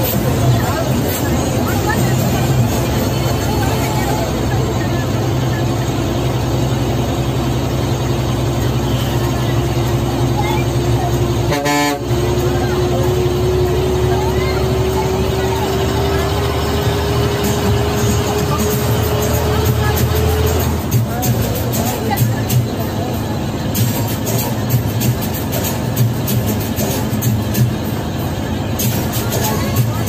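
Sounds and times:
bus diesel engine running: 0:00.0 - 0:30.0
road noise: 0:00.0 - 0:30.0.

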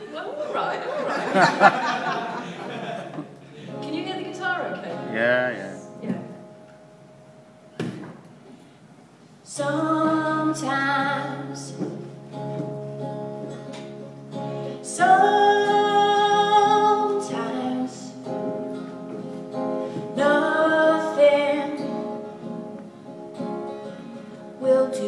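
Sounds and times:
guitar accompaniment: 0:01.0 - 0:25.0
woman singing: 0:09.4 - 0:12.1, 0:14.7 - 0:18.6, 0:20.0 - 0:22.6, 0:24.5 - 0:25.0.

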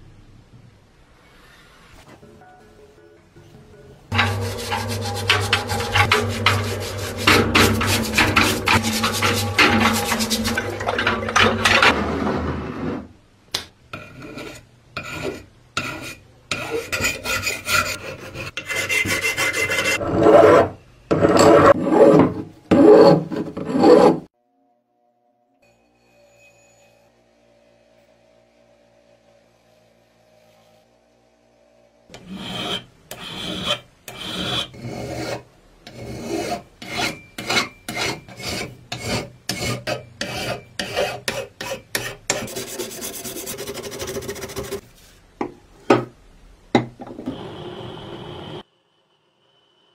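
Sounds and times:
hand file rasping on steel: 0:04.1 - 0:11.1, 0:14.0 - 0:20.6, 0:32.1 - 0:44.8.

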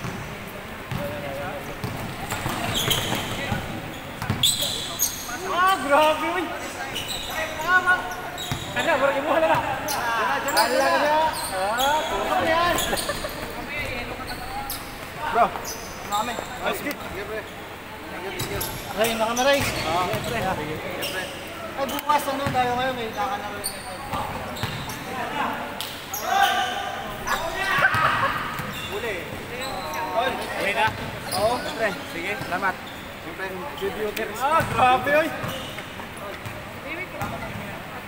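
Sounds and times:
players shouting: 0:26.1 - 0:30.8.

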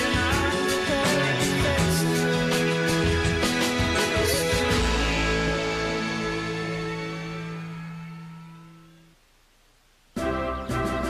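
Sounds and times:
held chord of theme music: 0:00.0 - 0:09.1.

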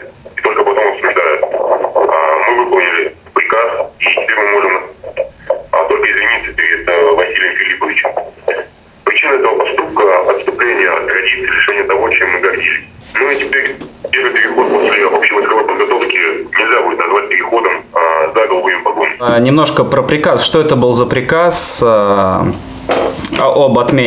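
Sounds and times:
man speaking over telephone: 0:00.0 - 0:22.6, 0:23.3 - 0:24.0.

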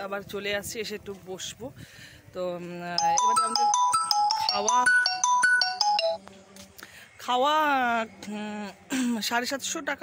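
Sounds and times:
phone ringtone melody: 0:03.0 - 0:06.2.

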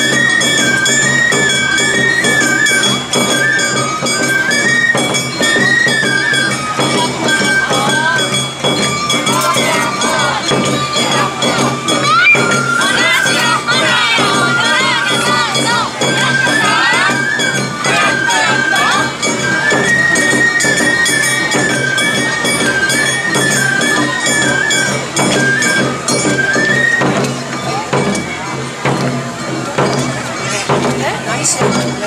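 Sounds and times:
bamboo flute melody: 0:00.0 - 0:32.0
drums beating: 0:00.0 - 0:32.0.

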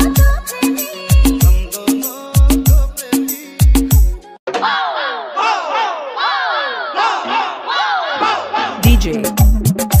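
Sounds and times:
sampled shouts falling in pitch: 0:04.5 - 0:08.8
bass-heavy beat: 0:08.8 - 0:10.0.

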